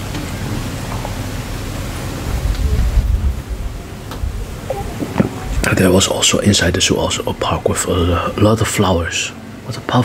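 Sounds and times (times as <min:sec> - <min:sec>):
wind on microphone: 0:02.3 - 0:05.8.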